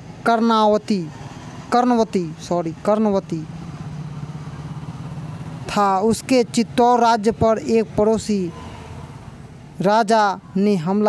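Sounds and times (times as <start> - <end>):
speech: 0.2 - 1.1, 1.7 - 3.5, 5.7 - 8.6, 9.8 - 11.0.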